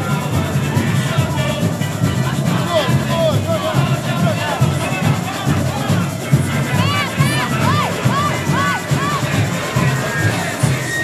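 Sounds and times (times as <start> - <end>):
crowd noise: 0.0 - 11.0
samba drums playing: 0.0 - 11.0
short squeals: 10.1 - 11.0.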